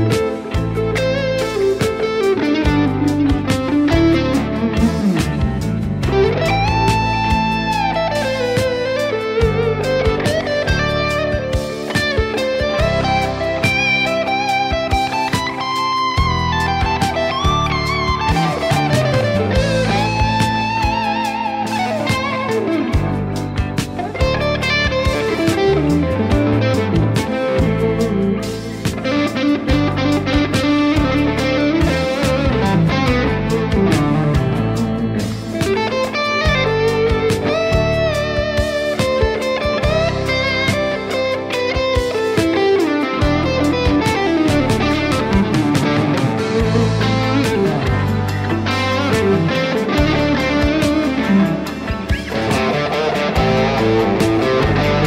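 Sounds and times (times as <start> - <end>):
bass line: 0.0 - 11.8, 12.6 - 15.5, 16.1 - 41.9, 43.2 - 55.0
electric guitar lead solo: 0.0 - 55.0
drum beat: 49.2 - 55.0.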